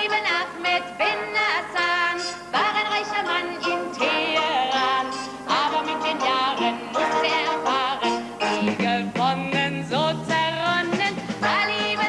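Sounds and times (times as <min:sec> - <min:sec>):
band accompaniment: 0:05.1 - 0:12.0.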